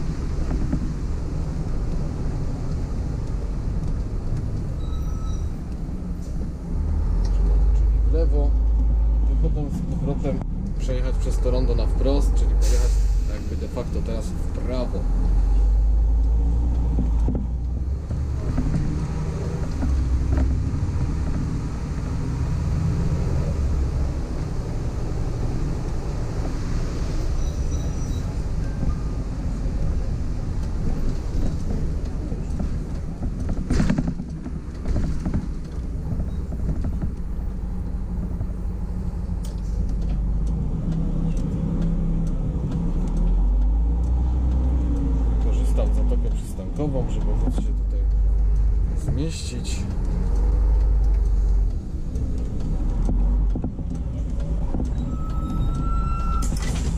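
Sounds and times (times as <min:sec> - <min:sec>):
bus diesel engine running: 0:00.0 - 0:56.9.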